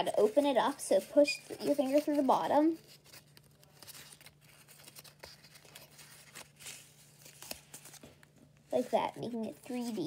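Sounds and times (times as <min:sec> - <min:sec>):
paper crinkling and crackling: 0:00.0 - 0:10.0.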